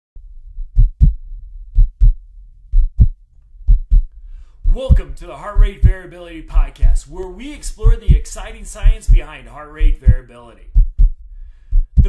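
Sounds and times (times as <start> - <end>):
heartbeat thumps: 0.5 - 12.0.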